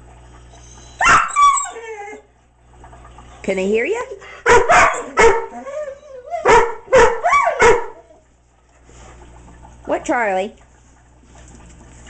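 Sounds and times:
dog whining: 0.5s - 2.3s, 4.8s - 8.3s
dog barking: 4.4s - 5.6s, 6.4s - 8.0s.

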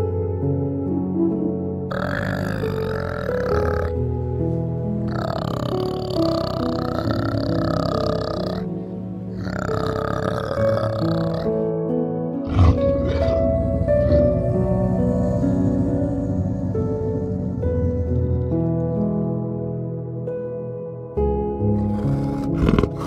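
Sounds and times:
soft background music: 0.0s - 23.0s
orangutan long rough calls: 1.9s - 4.1s, 5.1s - 11.7s, 12.4s - 19.0s, 21.7s - 23.0s.

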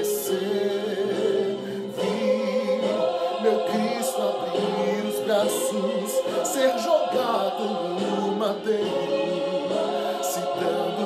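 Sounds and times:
choir-like backing voices: 0.0s - 11.0s
man singing with vibrato: 0.0s - 11.0s.

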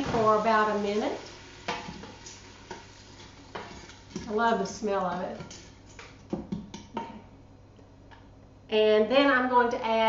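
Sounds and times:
wooden spoon tapping metal pot: 5.1s - 7.2s.

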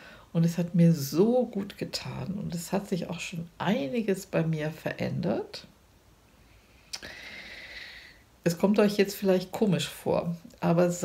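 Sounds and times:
in-breath with slight whistle: 6.6s - 8.2s
mouth click: 6.9s - 7.1s.

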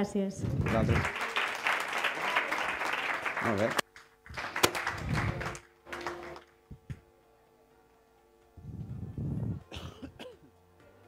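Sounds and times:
audience rustling and shuffling: 0.5s - 7.0s.

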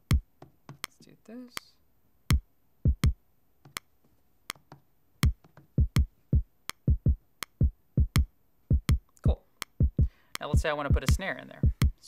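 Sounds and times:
electronic kick drum thumps: 0.0s - 0.9s, 2.3s - 3.2s, 5.2s - 12.0s
metronome clicking: 5.2s - 11.2s.

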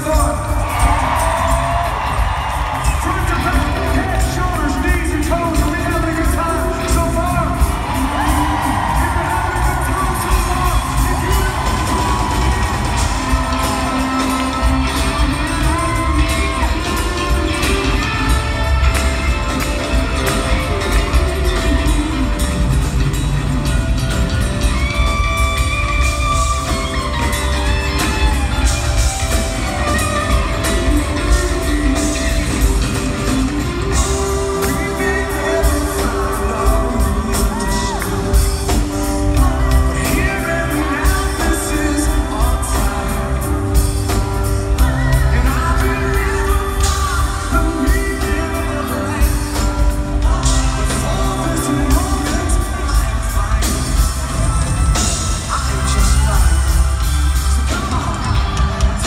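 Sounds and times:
live rock band playing: 0.0s - 59.0s
person singing lead vocal: 2.9s - 22.9s, 27.1s - 59.0s.

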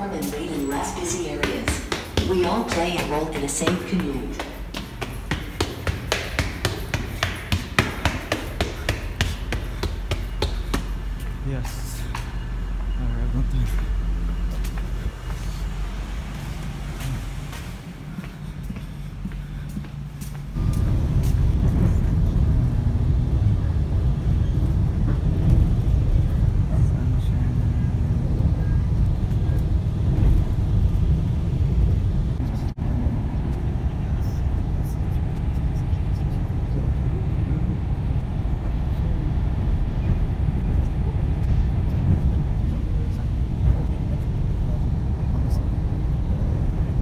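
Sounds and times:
steady low rumble: 0.0s - 47.0s
footsteps hurrying down concrete stairs: 0.2s - 12.3s, 17.0s - 21.4s.

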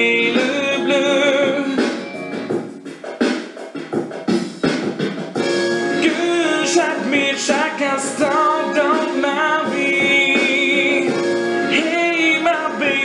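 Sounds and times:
song with wavering vocals: 0.0s - 2.5s, 5.5s - 13.0s.

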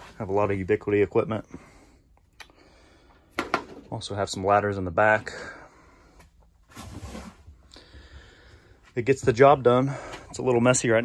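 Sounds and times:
rustling and handling noise: 6.1s - 10.8s.

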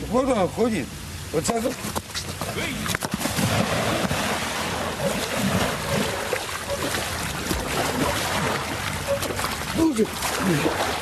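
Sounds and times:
heavy splashing in water: 2.7s - 11.0s
man falling into water: 2.9s - 11.0s.

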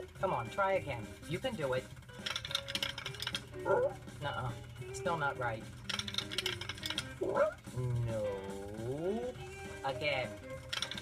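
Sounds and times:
toy blocks clattering: 2.2s - 3.5s, 5.9s - 7.1s, 10.7s - 11.0s.

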